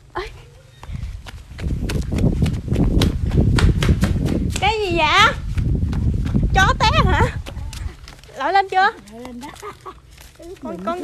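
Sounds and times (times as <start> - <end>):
quick irregular footfalls: 0.8 - 11.0.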